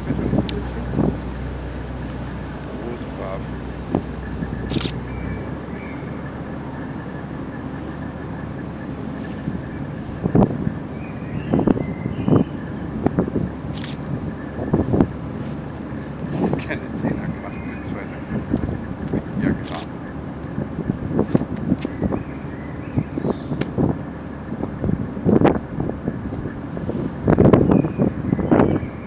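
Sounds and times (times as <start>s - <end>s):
ferry engine and water noise: 0.0s - 29.0s
low drone: 0.0s - 29.0s.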